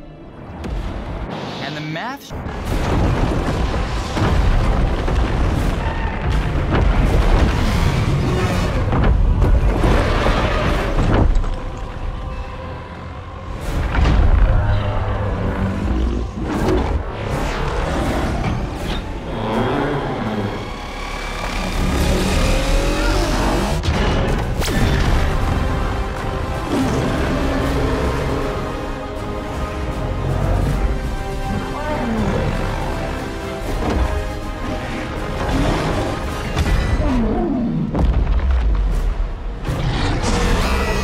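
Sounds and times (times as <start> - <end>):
dramatic music: 0.0 - 41.0
deep rumbling: 2.4 - 41.0
monster roaring: 19.2 - 23.9, 31.3 - 33.4, 39.7 - 41.0.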